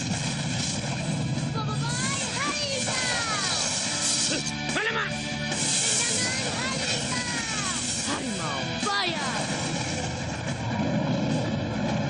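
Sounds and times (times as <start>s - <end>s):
low hum: 5.4s - 12.0s.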